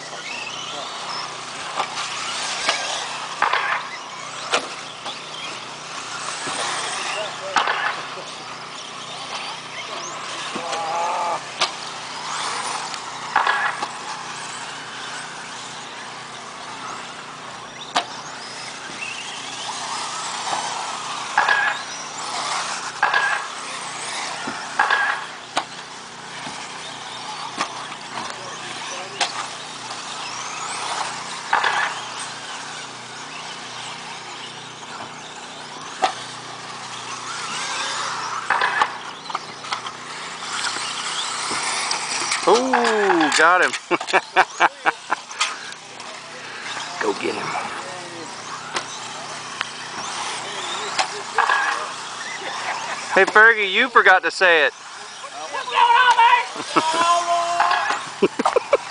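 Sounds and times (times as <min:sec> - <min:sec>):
rc car motor whine: 0:00.0 - 0:58.9
sharp clacks of cars landing: 0:00.2 - 0:08.1, 0:11.5 - 0:14.6, 0:17.8 - 0:32.9, 0:34.6 - 0:43.9.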